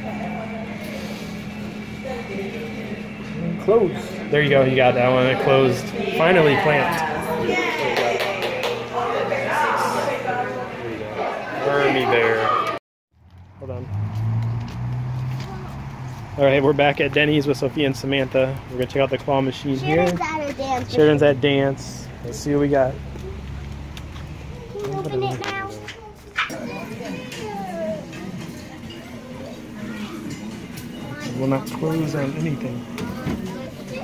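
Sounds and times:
low mechanical hum: 0.0s - 12.8s
voices: 0.0s - 12.8s, 15.3s - 34.0s.

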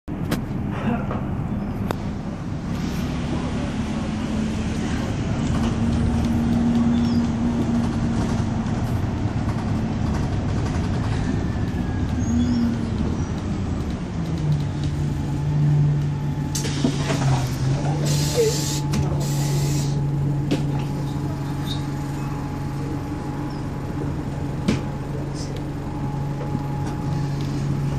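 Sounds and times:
bus engine and road noise: 0.0s - 27.9s
compressed air hisses: 18.0s - 20.0s.

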